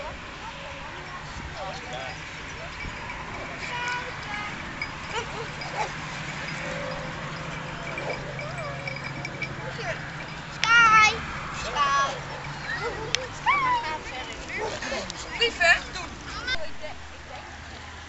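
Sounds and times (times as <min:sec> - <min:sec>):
people chattering: 0:00.0 - 0:18.0
dogs yipping and barking: 0:01.7 - 0:16.6
dog yelping: 0:02.8 - 0:10.4.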